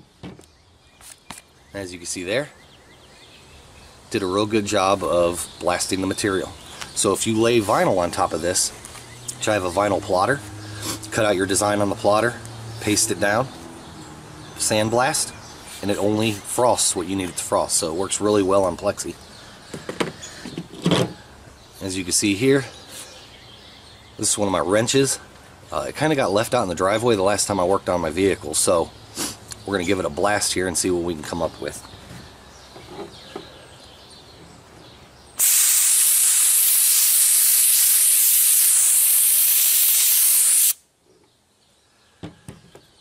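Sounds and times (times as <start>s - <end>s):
quiet outdoor background: 0.0s - 43.0s
speech: 1.7s - 2.6s, 4.1s - 8.8s, 9.4s - 10.4s, 11.0s - 13.5s, 14.6s - 19.2s, 21.8s - 22.8s, 24.2s - 28.9s, 29.6s - 31.9s
sandblaster hissing: 35.4s - 40.8s.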